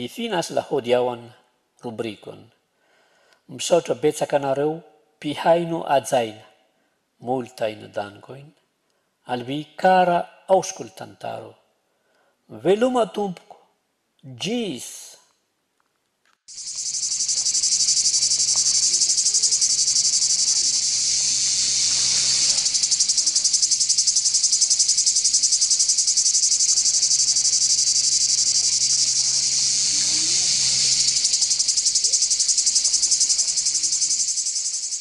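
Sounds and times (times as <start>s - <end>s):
high-pitched insect chorus trilling: 16.5s - 35.0s.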